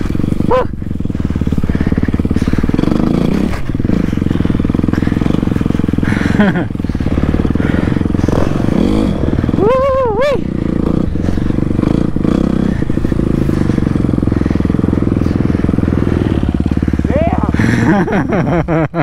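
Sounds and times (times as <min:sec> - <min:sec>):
dirt bike engine running: 0:00.0 - 0:19.0.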